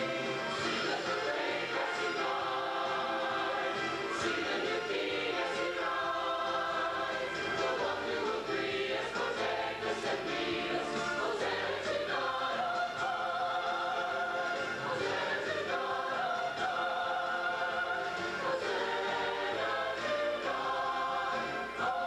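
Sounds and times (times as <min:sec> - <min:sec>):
choir singing: 0:00.0 - 0:22.0.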